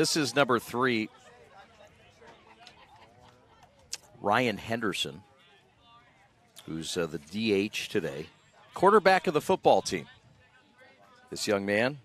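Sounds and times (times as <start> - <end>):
low outdoor background: 0.0 - 12.0.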